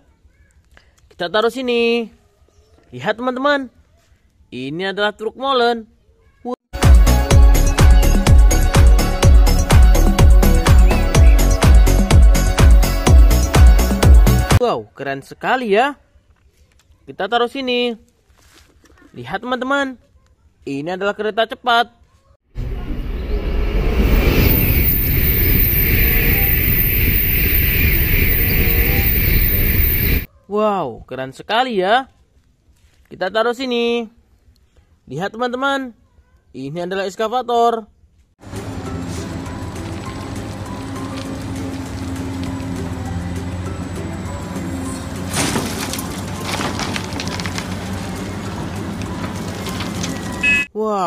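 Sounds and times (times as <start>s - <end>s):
background music: 6.8s - 14.6s, 38.4s - 46.6s
crunching rush of dirt and rock: 9.6s - 12.2s, 23.1s - 30.3s, 38.4s - 50.7s
excavator running: 22.6s - 30.3s, 38.4s - 50.7s
high-speed train passing: 22.6s - 30.3s, 38.4s - 45.3s
small crackles: 39.6s - 42.9s, 45.3s - 50.6s.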